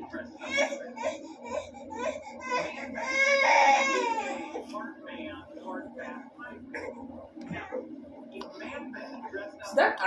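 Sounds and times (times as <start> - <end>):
child crying: 0.4 - 4.5.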